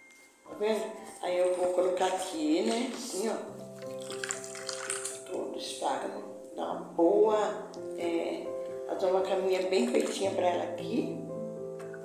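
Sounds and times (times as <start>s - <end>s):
background music: 0.0s - 12.0s
woman speaking: 0.5s - 3.5s, 5.3s - 11.2s.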